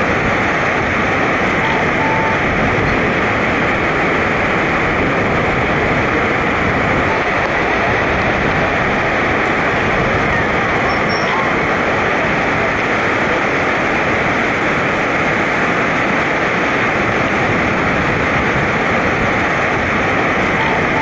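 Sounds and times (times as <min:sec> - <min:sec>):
white-water river rushing: 0:00.0 - 0:21.0.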